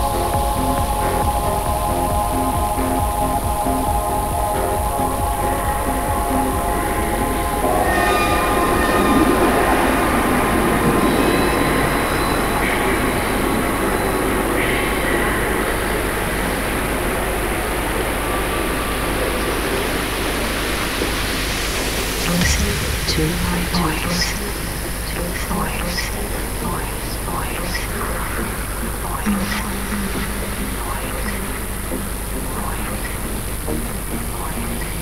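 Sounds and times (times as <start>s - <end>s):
harsh rushing noise texture: 0.0s - 25.1s
pitched synth tones: 0.0s - 35.0s
steady low bass: 0.0s - 35.0s.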